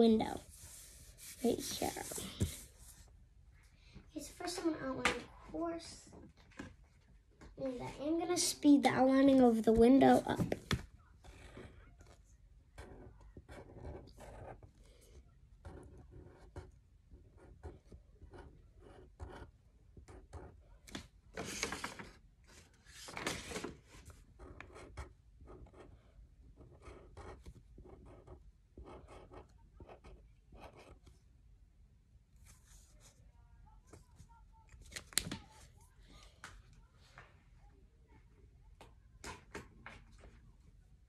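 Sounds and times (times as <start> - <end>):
marker scratching on paper: 0.0 - 3.1, 26.6 - 31.1.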